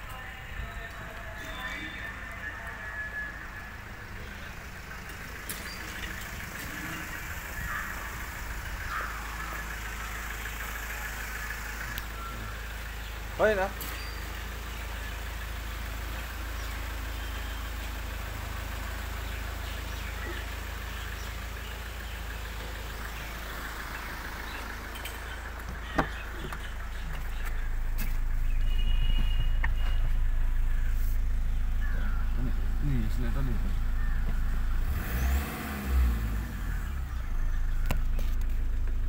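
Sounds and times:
car engine idling: 0:00.0 - 0:39.0.

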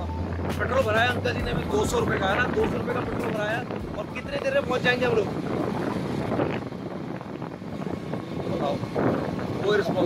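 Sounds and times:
motorcycle engine: 0:00.0 - 0:10.0
wind rushing over microphone: 0:00.0 - 0:10.0.

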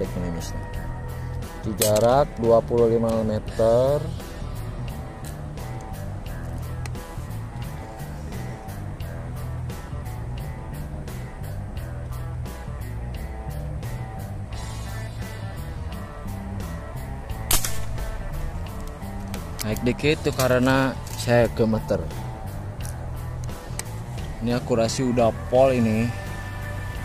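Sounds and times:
background music with steady beat: 0:00.0 - 0:27.0
suppressed air rifle shot: 0:17.4 - 0:18.4.

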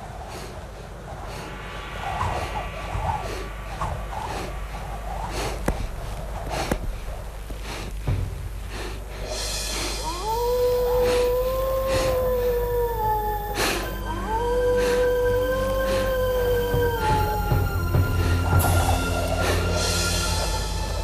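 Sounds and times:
wolf howling: 0:10.0 - 0:20.7.

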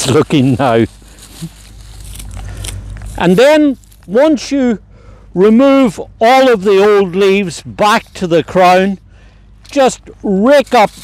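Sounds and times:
dry leaves crackling and rustling: 0:00.0 - 0:04.2
steady low rumble: 0:00.0 - 0:11.0.

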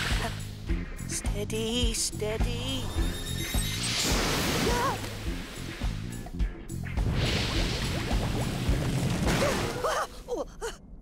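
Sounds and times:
background music: 0:00.0 - 0:10.8.

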